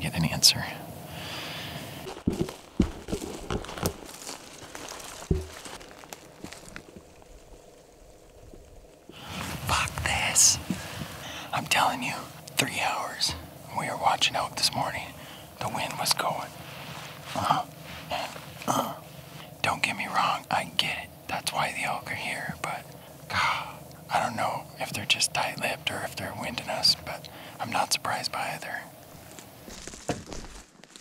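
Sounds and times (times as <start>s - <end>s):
man whispering: 0.0s - 1.0s, 9.1s - 29.0s
backpack gear rustling: 1.8s - 7.6s
footsteps on forest floor: 1.8s - 11.4s, 29.0s - 31.0s.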